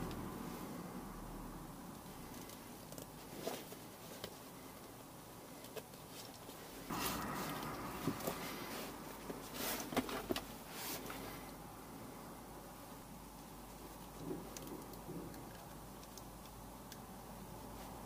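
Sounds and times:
rustling of wire and fabric: 0:02.0 - 0:11.6.

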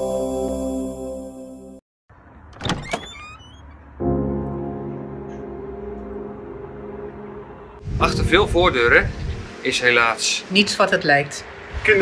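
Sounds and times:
door squeaking: 0:02.4 - 0:04.0
door latch clicks: 0:02.5 - 0:03.7.

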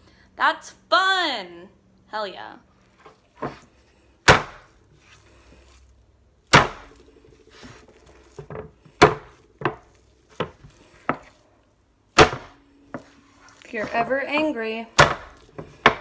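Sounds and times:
dough slammed onto wooden board: 0:04.3 - 0:04.7, 0:06.5 - 0:06.9, 0:12.1 - 0:12.6, 0:15.0 - 0:16.0.

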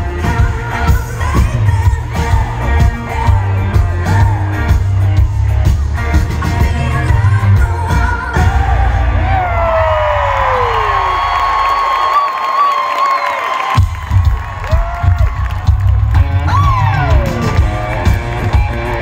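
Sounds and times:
live pop-rock band: 0:00.0 - 0:10.1, 0:13.7 - 0:19.0
crowd cheering and whooping: 0:08.3 - 0:19.0.

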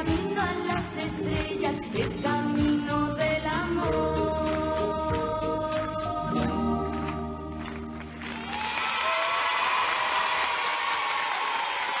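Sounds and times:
children applauding: 0:07.0 - 0:12.0
children cheering: 0:08.2 - 0:12.0.

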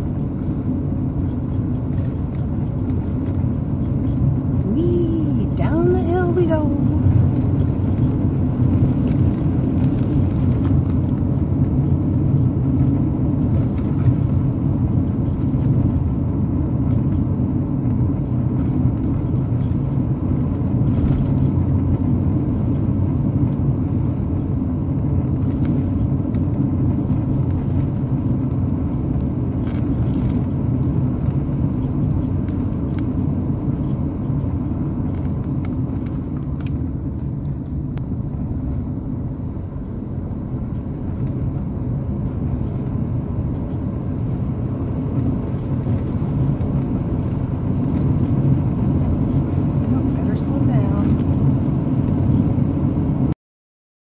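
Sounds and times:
car engine and tyre drone: 0:00.0 - 0:53.3.

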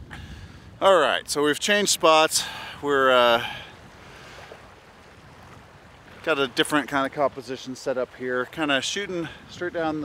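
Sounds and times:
small waves lapping at shore: 0:00.0 - 0:10.0
wind: 0:00.0 - 0:10.0.

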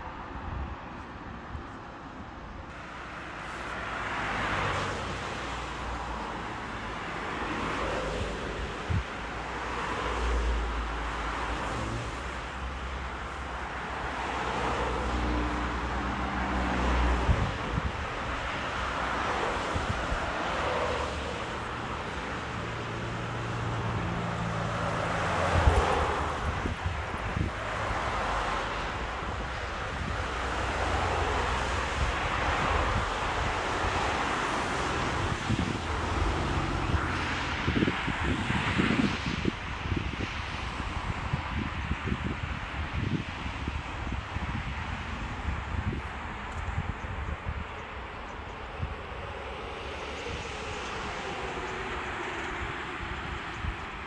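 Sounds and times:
tyre and road hiss: 0:02.7 - 0:54.0.

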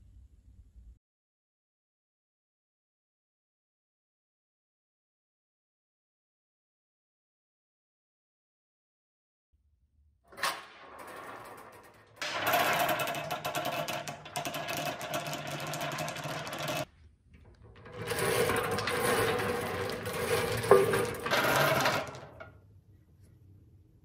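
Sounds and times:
bingo balls clattering in wire cage: 0:10.4 - 0:22.5.

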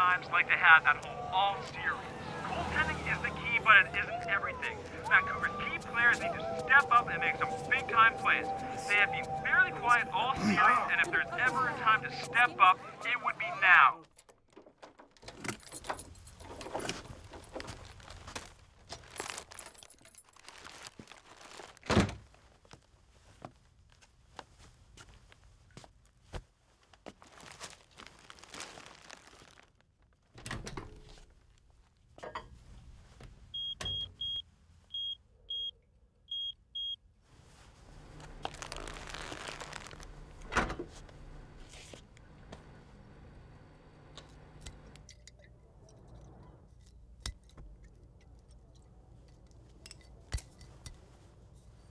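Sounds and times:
keys jangling: 0:15.3 - 0:17.6, 0:19.0 - 0:20.4
microwave oven humming: 0:39.9 - 0:45.0.

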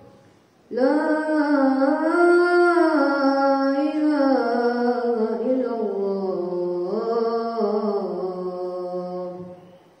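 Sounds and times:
boy chanting call to prayer: 0:00.0 - 0:09.8.

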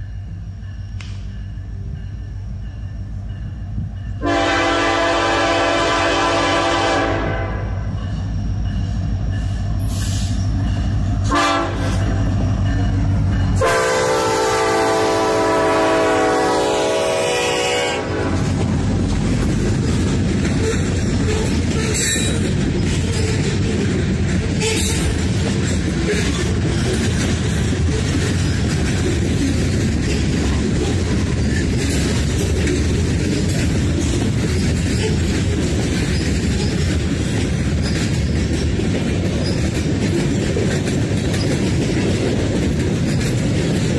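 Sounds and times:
train wheels on rails: 0:00.0 - 0:43.9
locomotive air horn blasts: 0:04.2 - 0:07.9, 0:11.2 - 0:12.1, 0:13.6 - 0:18.6.

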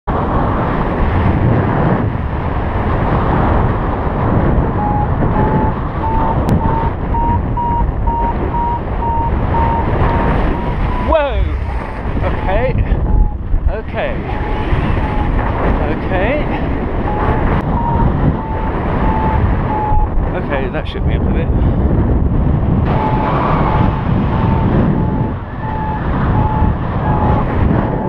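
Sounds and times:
wind buffeting microphone: 0:00.1 - 0:28.0
variometer beeping: 0:04.8 - 0:13.4, 0:14.1 - 0:15.6, 0:17.0 - 0:20.2, 0:22.8 - 0:28.0.

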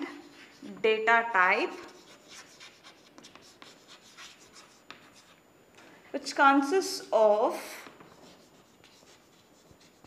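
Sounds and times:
chalk scratching on blackboard: 0:00.0 - 0:00.8, 0:01.7 - 0:05.4, 0:07.8 - 0:10.0.

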